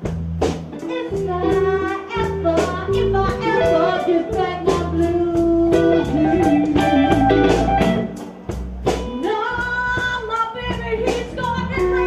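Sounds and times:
electric bass: 0.0 - 12.0
live blues band: 0.0 - 12.0
sliding lead guitar line: 0.7 - 12.0.

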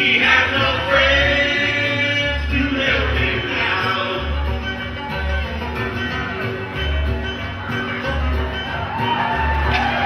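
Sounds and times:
voices singing together: 0.0 - 4.4
acoustic guitar: 0.0 - 10.0
washtub bass low notes: 0.0 - 10.0.

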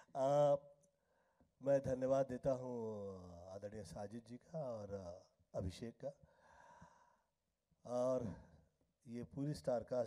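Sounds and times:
man speaking: 0.0 - 0.7, 1.6 - 6.2, 7.9 - 8.5, 9.1 - 10.0.

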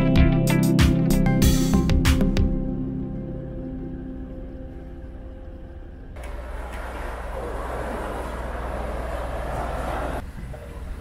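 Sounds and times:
low steady hum: 2.6 - 11.0.

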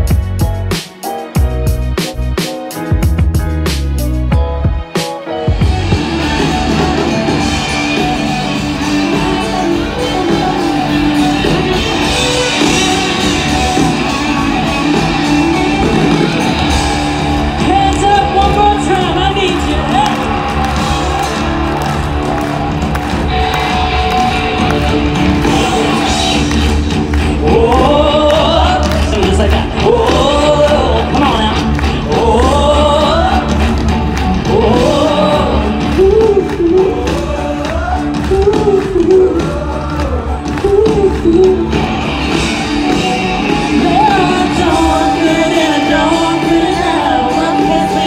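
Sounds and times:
live band through sound system: 0.0 - 48.0
person singing: 23.0 - 48.0.

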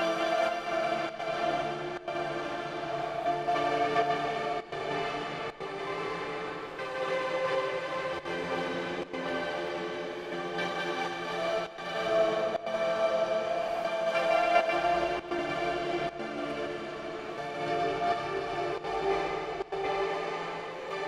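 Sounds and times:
dreamy synth pad chords: 0.0 - 21.0.

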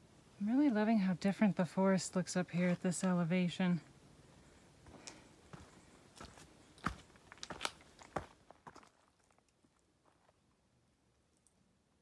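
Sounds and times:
footsteps on rocky trail: 4.8 - 10.4.

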